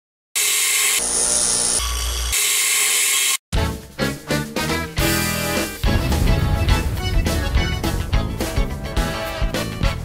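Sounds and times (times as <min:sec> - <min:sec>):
music: 0:03.5 - 0:10.0.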